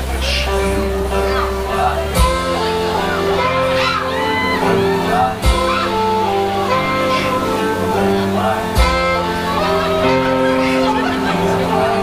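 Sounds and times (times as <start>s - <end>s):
electric guitar: 0.0s - 12.0s
saxophone: 0.1s - 12.0s
drums: 2.1s - 2.8s, 5.4s - 6.2s, 8.8s - 9.2s
heavy drum hit: 2.2s - 2.6s, 5.4s - 5.9s, 8.8s - 9.2s.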